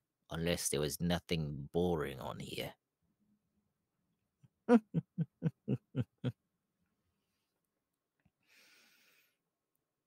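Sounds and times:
man laughing in villain voice: 4.7s - 6.4s.

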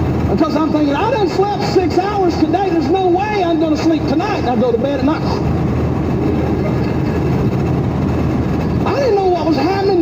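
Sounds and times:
car engine and tyre rumble: 0.0s - 10.0s.

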